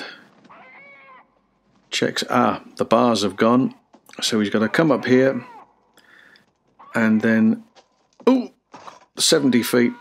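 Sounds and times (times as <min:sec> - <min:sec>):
faint animal cry: 0:00.4 - 0:01.4, 0:04.5 - 0:05.8.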